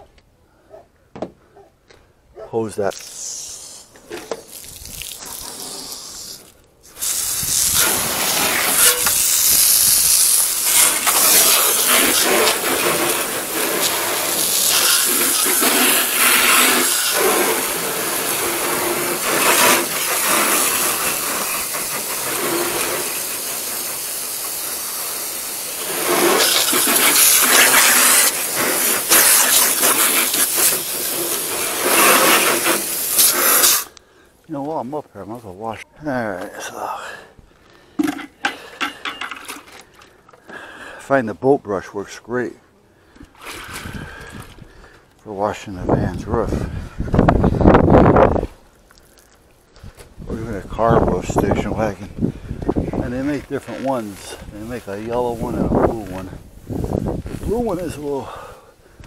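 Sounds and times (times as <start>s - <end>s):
hose spraying water on roof: 2.8s - 33.9s, 53.1s - 58.5s.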